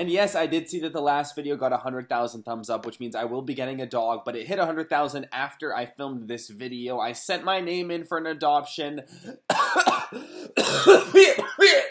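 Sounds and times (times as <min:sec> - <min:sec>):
man coughing: 0:09.2 - 0:11.9.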